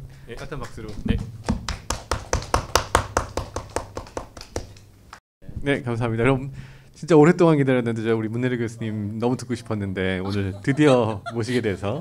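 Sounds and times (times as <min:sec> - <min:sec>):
people clapping: 0:00.3 - 0:04.9.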